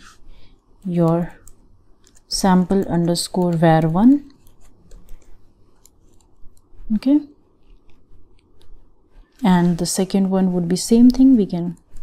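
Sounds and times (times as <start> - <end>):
soft keyboard keystrokes: 0.9 - 6.8.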